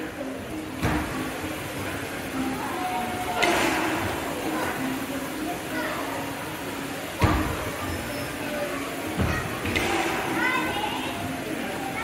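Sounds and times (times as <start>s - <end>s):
busy indoor hall hum: 0.0s - 12.0s.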